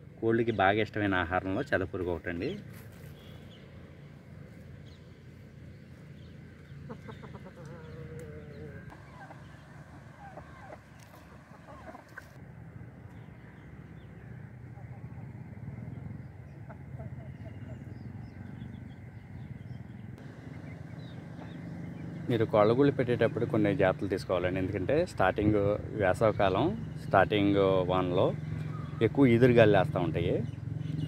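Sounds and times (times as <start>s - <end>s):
chickens clucking: 6.5s - 12.4s, 16.3s - 17.9s, 20.4s - 22.2s
chicken long wavering call: 7.0s - 10.8s.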